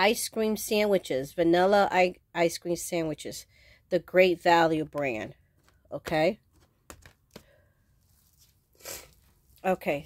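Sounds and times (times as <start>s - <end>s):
sharp sniff through stuffy nose: 8.8s - 9.2s.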